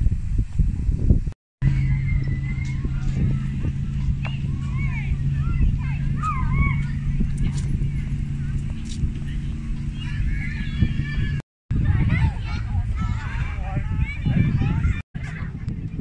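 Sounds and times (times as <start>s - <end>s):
wind rumbling on microphone: 0.0s - 16.0s
steady low hum: 0.9s - 16.0s
distant high voices calling: 1.6s - 15.5s.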